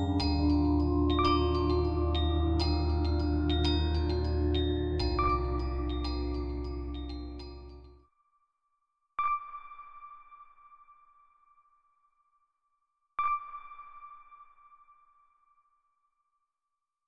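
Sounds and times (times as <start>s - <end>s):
bell-like chime: 0.0s - 8.0s.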